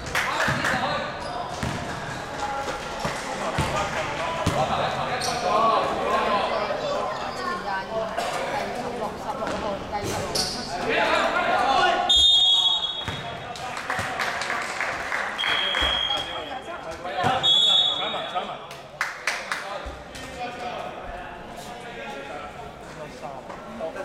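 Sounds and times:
basketball bouncing on court: 1.5s - 2.0s, 13.0s - 13.4s
referee whistle blasts: 12.1s - 13.1s, 15.4s - 16.6s, 17.4s - 18.4s.

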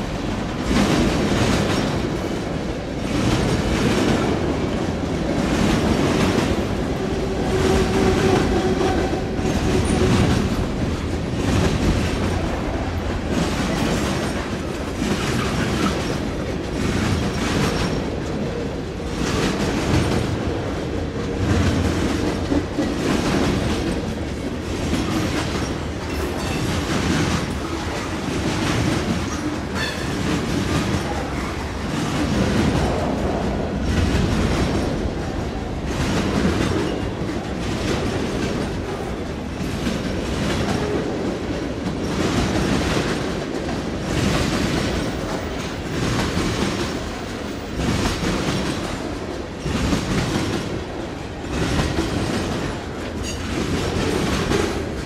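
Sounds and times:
freight train rolling past: 0.0s - 55.0s
wheels clickety-clack on rail joints: 0.0s - 55.0s.

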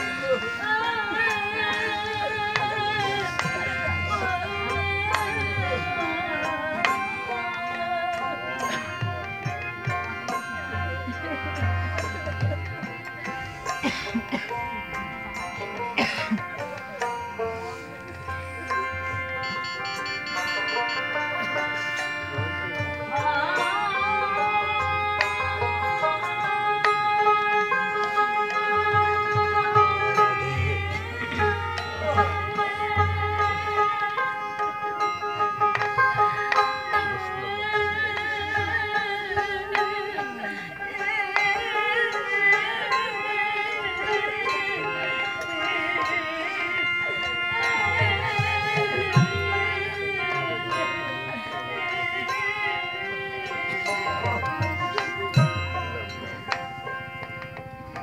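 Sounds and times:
devotional music: 0.0s - 58.0s
sharp percussion strikes: 0.0s - 58.0s
steady held tones: 0.0s - 58.0s
sustained melody instruments: 0.0s - 58.0s.

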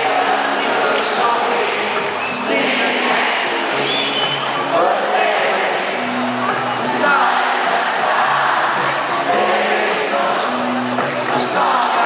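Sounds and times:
audience singing and talking: 0.0s - 12.0s
live song with acoustic guitar: 0.0s - 12.0s.

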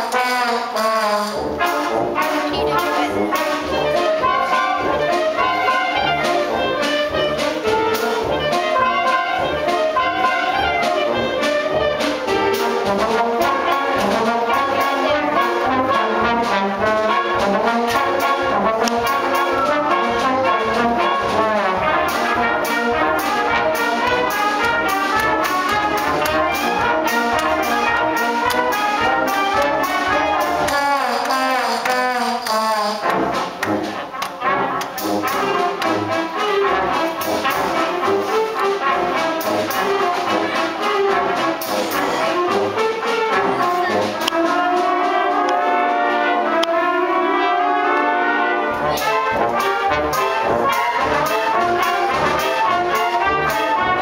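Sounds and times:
concert band playing: 0.0s - 54.0s.

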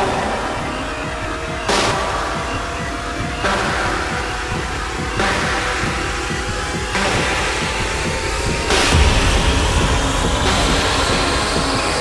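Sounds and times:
techno music with low beat: 0.0s - 12.0s
loud wash of noise: 6.9s - 12.0s.

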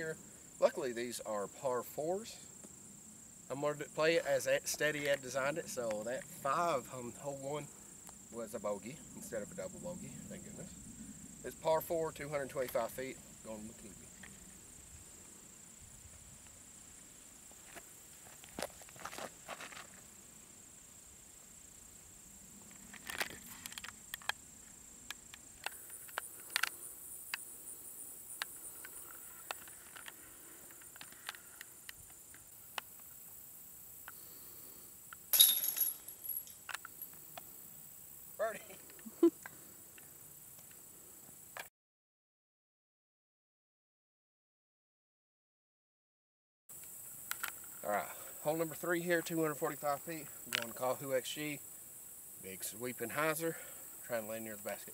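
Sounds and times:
light footsteps: 17.5s - 20.1s.

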